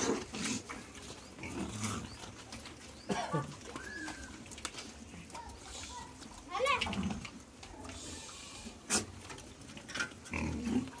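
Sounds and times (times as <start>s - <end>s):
young pigs grunting: 0.0s - 11.0s.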